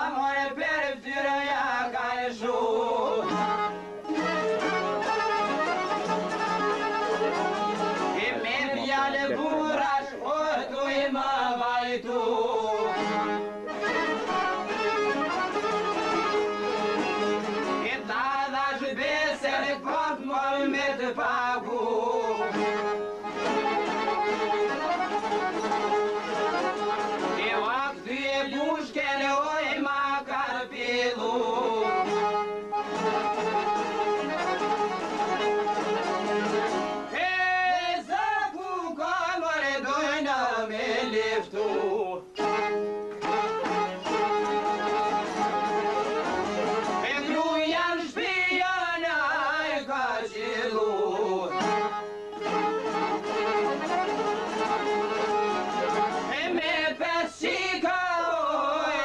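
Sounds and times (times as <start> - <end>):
person singing folk song: 0.0 - 59.0
instrumental folk music over drone: 2.8 - 8.6, 12.4 - 17.9, 21.8 - 27.8, 31.4 - 37.2, 41.9 - 47.3, 51.1 - 56.4.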